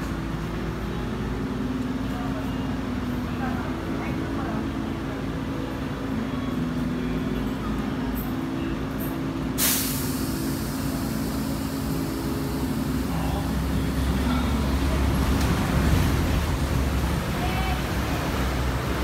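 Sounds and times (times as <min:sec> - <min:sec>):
diesel bus engine idling: 0:00.0 - 0:19.0
air brakes hissing: 0:09.6 - 0:13.1.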